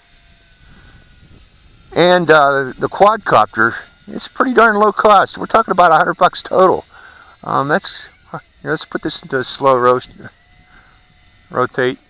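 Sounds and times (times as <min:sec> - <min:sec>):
distant quadcopter whine: 0:00.0 - 0:12.0.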